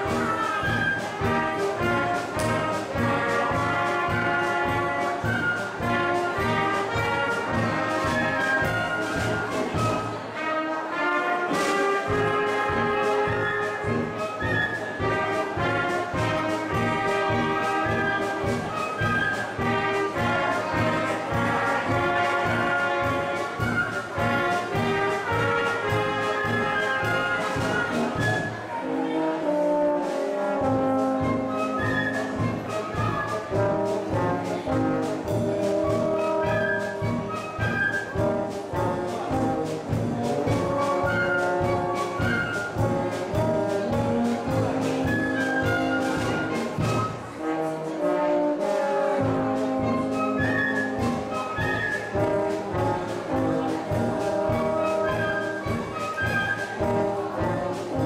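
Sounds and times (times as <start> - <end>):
brass band playing dance music: 0.0 - 58.0.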